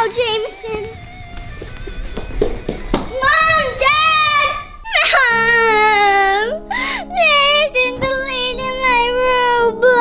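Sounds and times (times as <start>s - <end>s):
girl crying loudly: 3.9s - 7.4s.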